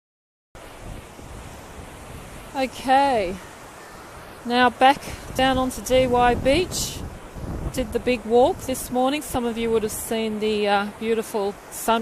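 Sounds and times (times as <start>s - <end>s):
ocean surf: 0.6s - 12.0s
wind buffeting microphone: 0.6s - 12.0s.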